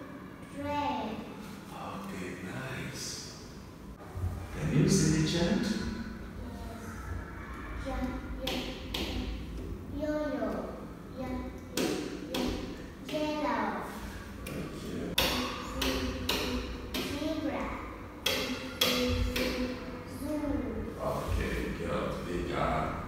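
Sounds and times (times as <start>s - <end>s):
sharp knocking beat: 15.1s - 17.2s, 18.2s - 19.8s
voice chanting: 20.9s - 23.0s.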